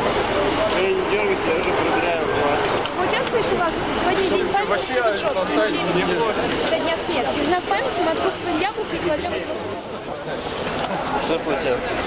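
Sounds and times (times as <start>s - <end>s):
crowd talking: 0.0s - 12.0s
street noise: 0.0s - 12.0s.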